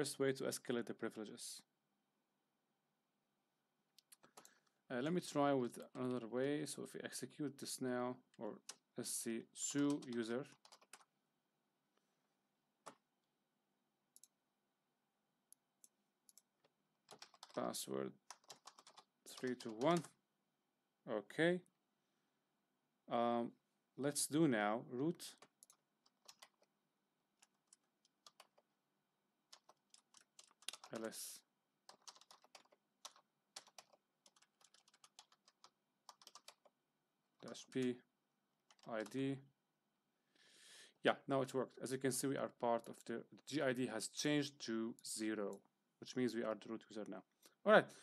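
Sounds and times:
computer keyboard typing: 9.8s - 11.1s, 16.3s - 17.6s, 18.2s - 20.2s, 25.4s - 26.7s, 27.4s - 28.6s, 29.5s - 31.1s, 31.9s - 36.8s, 38.7s - 39.2s.

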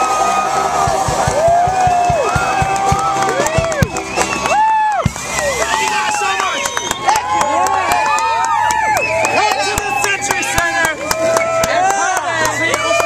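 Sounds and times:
crowd cheering and yelling: 0.0s - 13.0s
scattered sharp claps: 0.1s - 13.0s.

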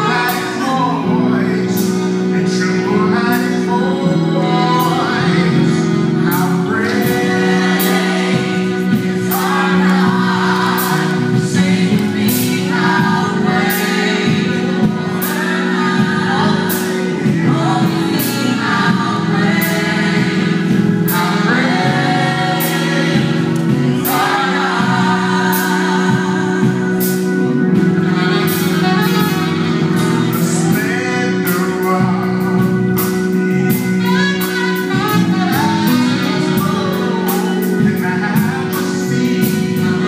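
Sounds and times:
sustained low chords: 0.0s - 40.0s
vocal group singing gospel: 0.0s - 40.0s.

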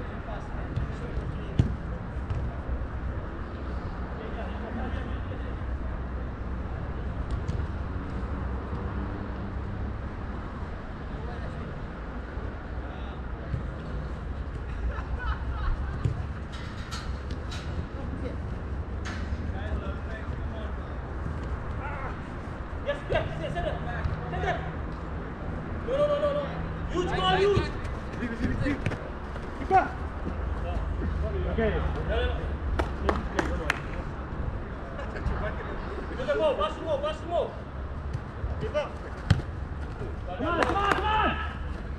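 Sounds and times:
players calling and shouting: 12.4s - 41.9s
ball being kicked: 38.1s - 40.1s.

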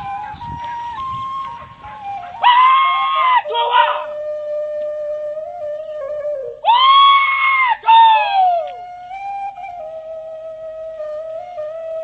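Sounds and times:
flute-like background music: 0.0s - 12.0s
man yelling high-pitched: 2.5s - 4.1s, 6.7s - 8.6s.

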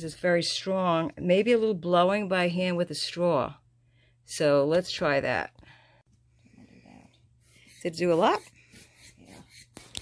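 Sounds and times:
person speaking: 7.7s - 8.5s.

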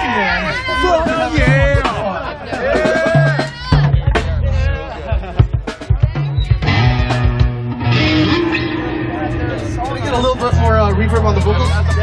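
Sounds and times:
crowd voices: 0.0s - 12.0s
bass notes: 0.9s - 12.0s
drum hits: 1.1s - 2.0s, 2.6s - 11.5s
electric guitar: 6.5s - 10.6s.

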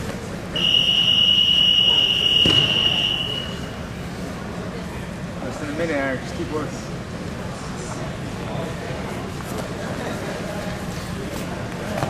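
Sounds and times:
hubbub of gym hall: 0.0s - 12.0s
thump: 2.4s - 2.8s.

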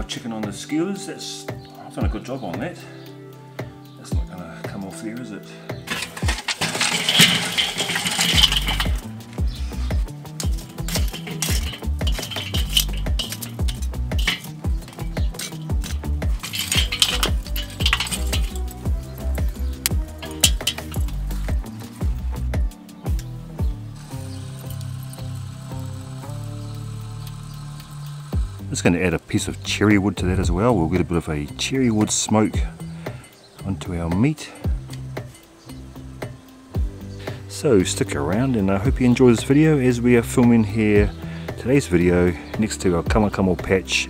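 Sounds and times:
background music: 0.0s - 44.0s
charcoal clinking on metal grate: 5.9s - 23.4s, 24.0s - 36.5s.

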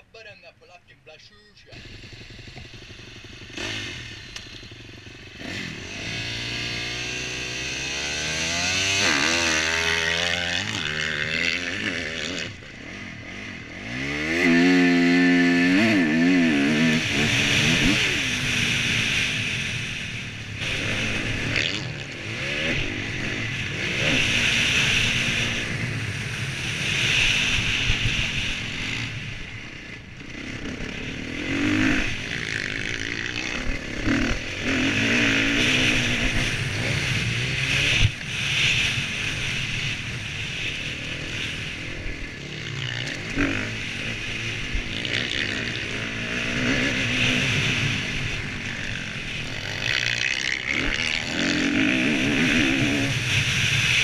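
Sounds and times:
motocross bike engine revving: 1.7s - 54.0s.

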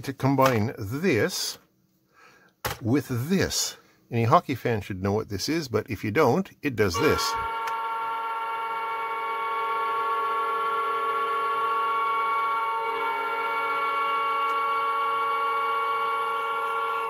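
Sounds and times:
hockey goal horn: 7.0s - 17.0s.

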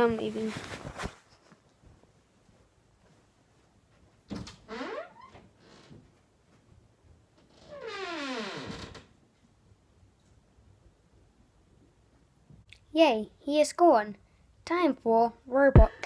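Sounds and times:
door creaking: 4.3s - 6.1s, 7.4s - 9.2s.

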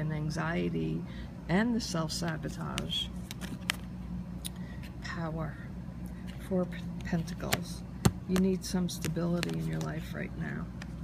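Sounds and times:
steady low hum: 0.0s - 11.0s
cards clicking and tapping: 2.2s - 3.9s, 7.0s - 10.1s.

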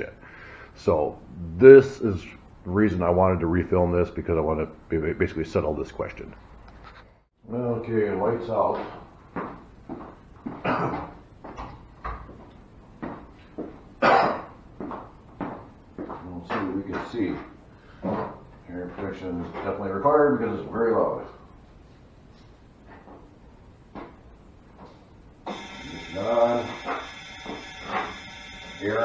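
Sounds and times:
steady hiss with high whine: 0.0s - 6.5s, 15.6s - 29.0s
soft footsteps on floor: 8.7s - 13.9s, 14.7s - 17.3s.

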